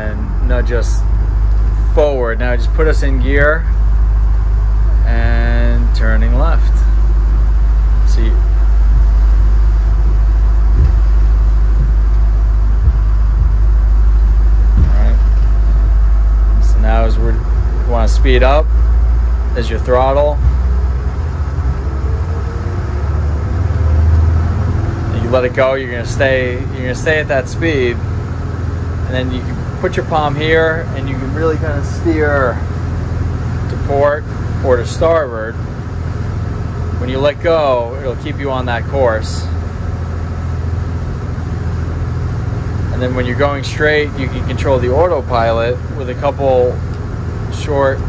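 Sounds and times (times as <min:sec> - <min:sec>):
hull hiss: 0:00.0 - 0:34.8
diesel engines droning: 0:00.0 - 0:48.0.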